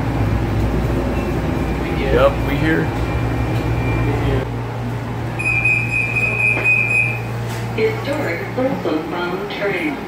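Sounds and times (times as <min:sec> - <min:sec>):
rail car low hum: 0:00.0 - 0:10.0
high electronic beep: 0:05.4 - 0:07.2.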